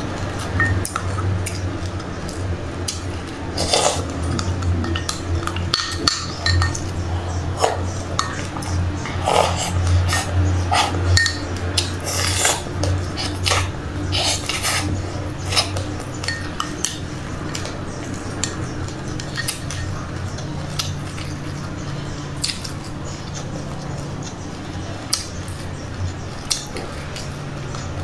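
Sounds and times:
crunchy chewing: 0:00.0 - 0:28.0
steady low hum: 0:00.0 - 0:28.0.

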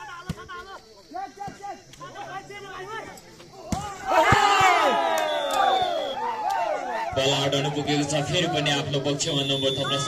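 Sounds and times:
crowd shouting and cheering: 0:03.5 - 0:10.0.

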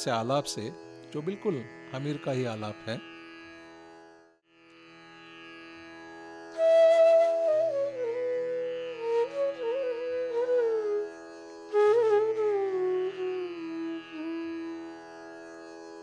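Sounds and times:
bamboo flute playing: 0:06.5 - 0:15.0.

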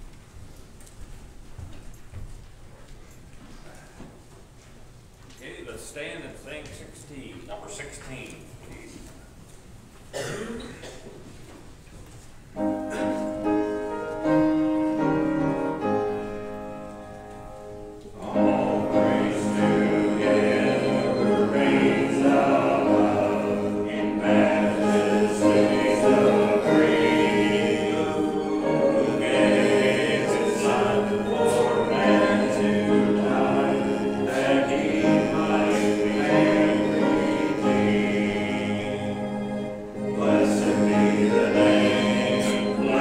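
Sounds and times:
congregation singing a hymn: 0:12.6 - 0:43.0.

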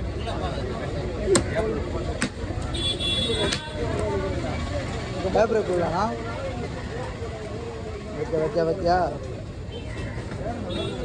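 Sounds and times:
people talking: 0:00.0 - 0:09.5
traffic: 0:00.0 - 0:11.0.

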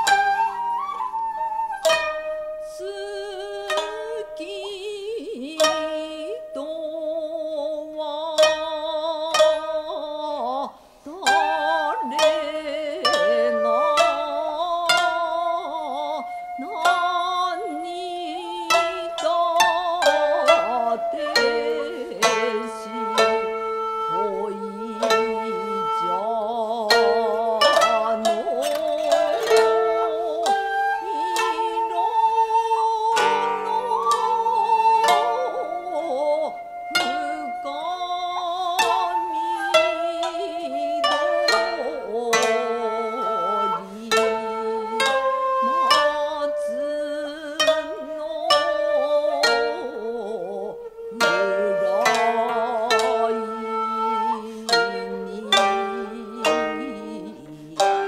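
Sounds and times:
koto plucked notes: 0:00.0 - 0:58.0.

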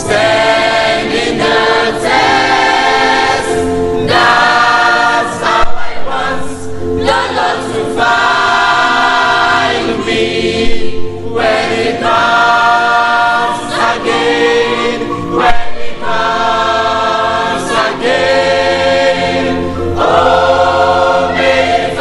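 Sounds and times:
choir singing gospel in harmony: 0:00.0 - 0:22.0.

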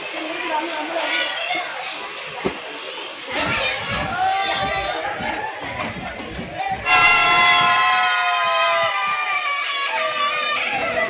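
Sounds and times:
train horn blast: 0:06.8 - 0:07.8.

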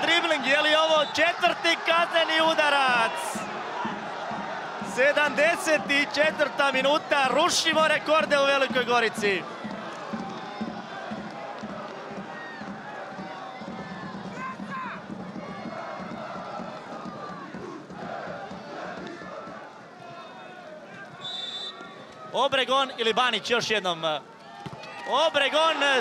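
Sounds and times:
stadium crowd shouting: 0:00.0 - 0:23.7, 0:24.4 - 0:26.0
referee's whistle: 0:00.6 - 0:01.5, 0:21.2 - 0:22.0.

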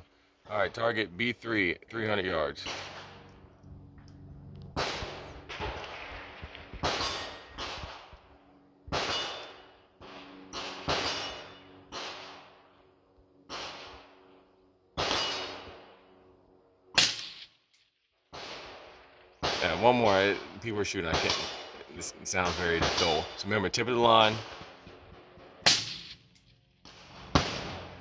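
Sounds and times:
faint steady hum: 0:00.0 - 0:17.8
rifle shots echoing: 0:02.6 - 0:03.3, 0:04.7 - 0:12.6, 0:13.5 - 0:14.3, 0:15.0 - 0:16.1, 0:17.0 - 0:17.6, 0:18.3 - 0:28.0.

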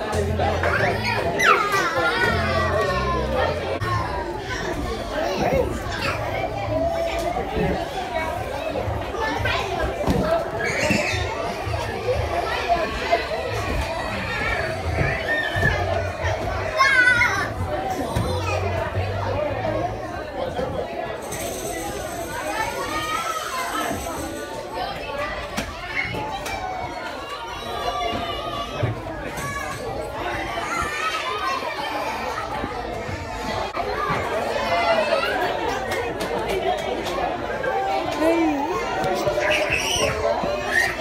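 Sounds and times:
children playing and calling out: 0:00.0 - 0:41.0
indistinct chatter: 0:00.0 - 0:41.0.

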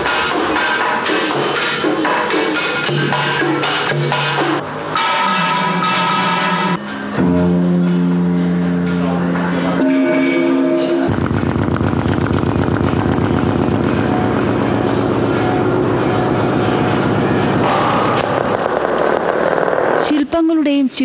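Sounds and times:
held musical chord: 0:05.0 - 0:11.2
engine running steadily: 0:11.1 - 0:19.6.

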